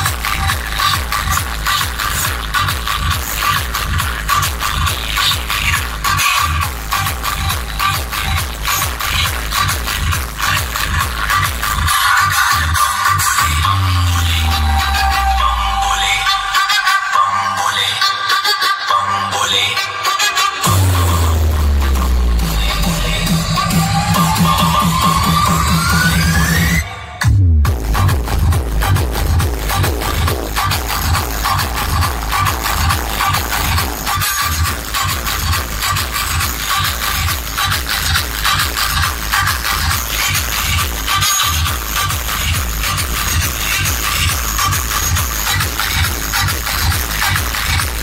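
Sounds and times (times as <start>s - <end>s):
loud electronic dance music: 0.0s - 48.0s.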